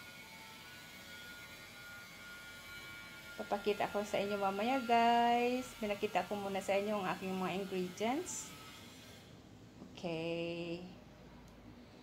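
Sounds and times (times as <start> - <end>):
thin even buzz: 0.0 - 9.3
low hum and hiss: 9.3 - 12.0.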